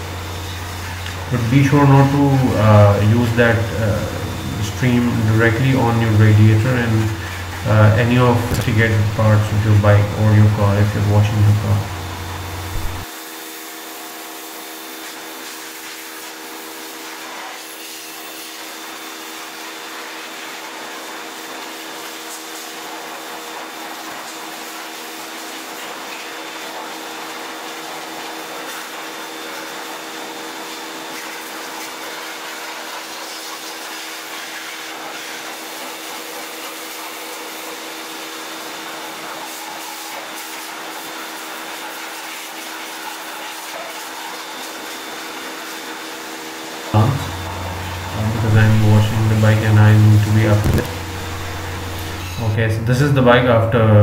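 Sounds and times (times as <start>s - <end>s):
pressure washer motor humming: 0.0s - 20.1s, 26.4s - 52.6s
water jet hissing: 0.0s - 52.6s.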